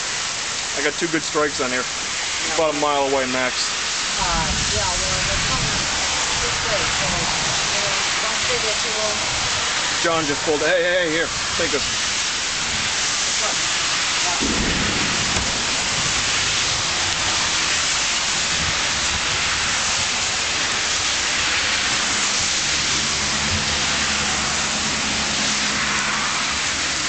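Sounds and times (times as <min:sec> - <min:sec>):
heavy rain pouring: 0:00.0 - 0:27.0
thunder rumbling: 0:04.2 - 0:09.6, 0:14.2 - 0:21.4.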